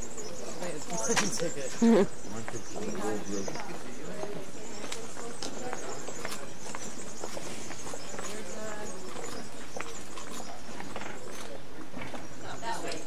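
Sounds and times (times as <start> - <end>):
crowd talking: 0.0 - 13.0
footsteps on stone pavement: 0.0 - 13.0.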